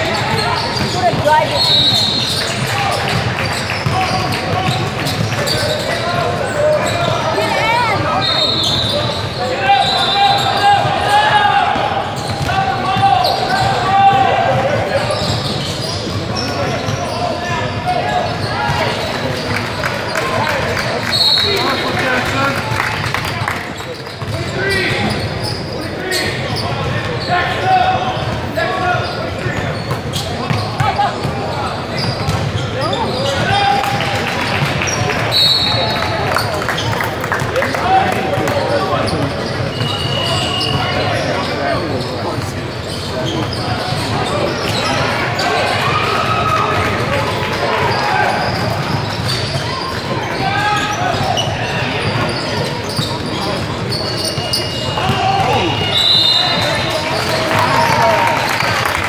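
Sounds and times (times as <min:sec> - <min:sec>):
voices in echoing gym: 0:00.0 - 0:59.0.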